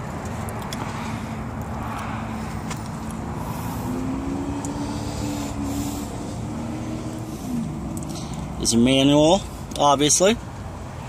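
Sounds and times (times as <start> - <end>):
faint engine hum: 0.0 - 11.0
low rumble of motor vehicles: 0.0 - 11.0.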